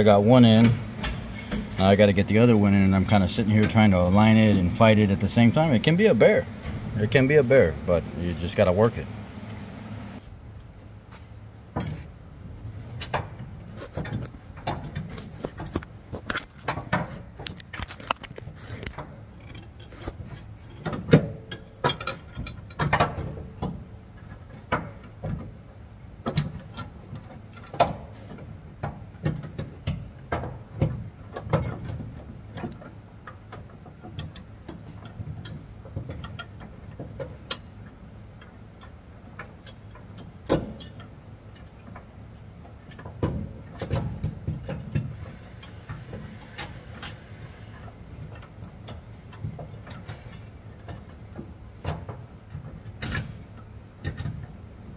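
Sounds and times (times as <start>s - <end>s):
steady low hum: 0.0s - 54.9s
metal clicks and knocks: 0.4s - 9.0s, 12.9s - 47.2s, 47.8s - 54.6s.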